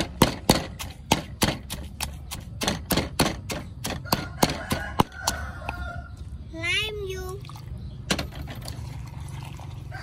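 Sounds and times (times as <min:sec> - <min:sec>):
pestle knocking in clay mortar: 0:00.0 - 0:05.4
rooster crowing: 0:04.0 - 0:06.2.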